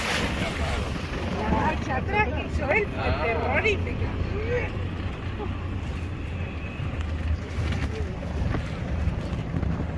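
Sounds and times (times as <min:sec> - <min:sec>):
vehicle engine and road rumble: 0:00.0 - 0:09.9
wind buffeting microphone: 0:06.8 - 0:09.9.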